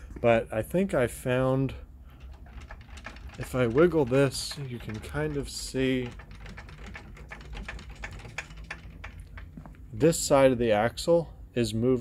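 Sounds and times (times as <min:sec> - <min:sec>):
loose axle clicking and clunking: 0:02.1 - 0:09.9.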